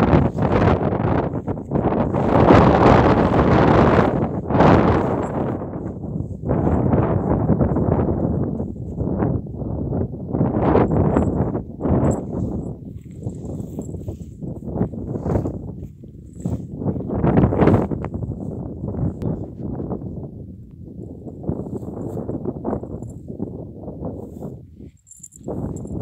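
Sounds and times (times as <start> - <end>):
horses rustling and munching: 12.1 - 18.0.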